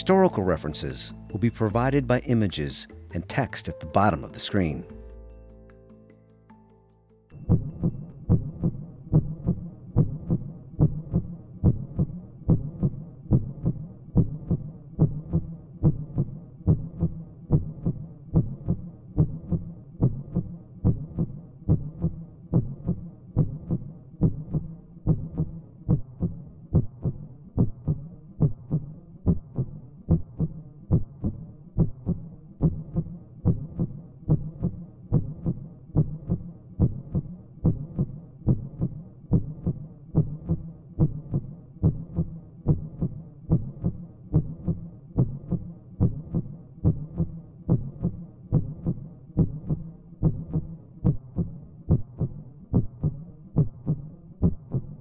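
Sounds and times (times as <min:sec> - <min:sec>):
heartbeat thudding: 0:07.4 - 0:55.0.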